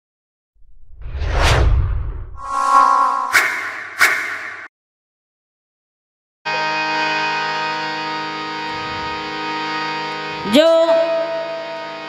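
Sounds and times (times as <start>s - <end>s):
deep rumble: 0.6s - 4.0s
rushing whoosh: 0.6s - 4.7s.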